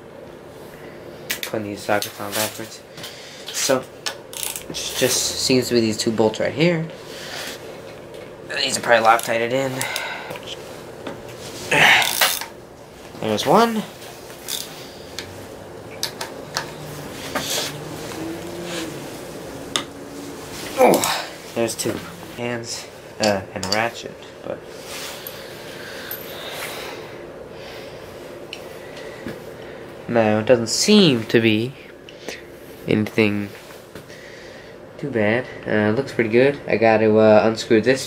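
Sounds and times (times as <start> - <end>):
person grunting with effort: 11.7 - 12.4, 19.9 - 22.3.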